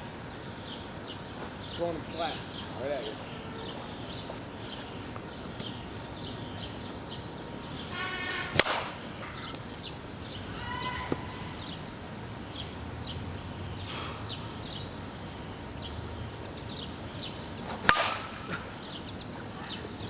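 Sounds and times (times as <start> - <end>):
birds chirping: 0.0 - 20.0
bat cracking a ball: 8.4 - 9.0, 17.7 - 18.7.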